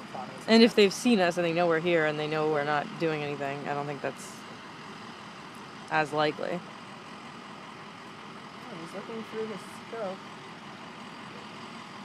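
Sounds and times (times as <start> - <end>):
truck engines idling: 0.0 - 12.0.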